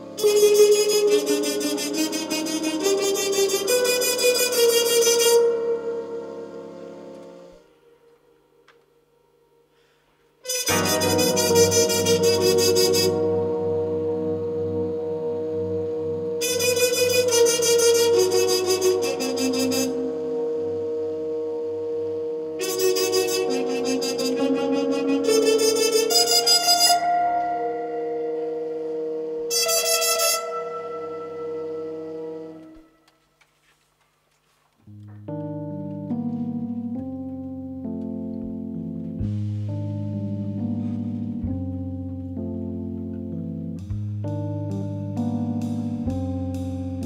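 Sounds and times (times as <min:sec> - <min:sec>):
jazz big band playing: 0:00.0 - 0:06.7, 0:10.4 - 0:32.5, 0:43.8 - 0:47.0
trumpet section rapid notes: 0:00.2 - 0:06.6, 0:10.4 - 0:21.0, 0:21.6 - 0:33.0
steady bass: 0:10.7 - 0:29.5, 0:34.9 - 0:47.0.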